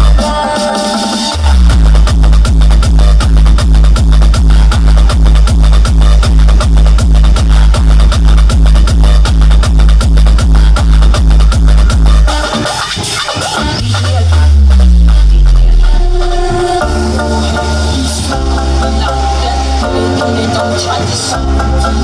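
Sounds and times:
electronic dance music: 0.0s - 22.0s
heavy bass kick beat: 0.0s - 22.0s.

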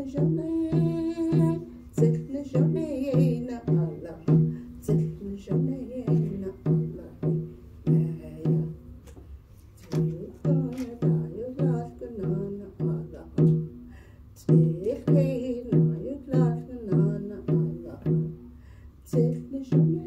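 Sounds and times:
hand drum beaten: 0.0s - 8.8s, 10.0s - 13.8s, 14.4s - 18.4s, 19.1s - 20.0s
woman singing: 0.0s - 8.9s, 9.8s - 13.8s, 14.4s - 18.4s, 19.0s - 20.0s.

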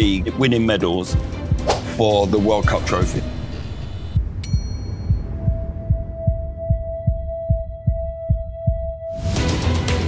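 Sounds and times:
steady high tone: 2.4s - 5.3s
low heartbeat thumps: 2.5s - 9.1s.

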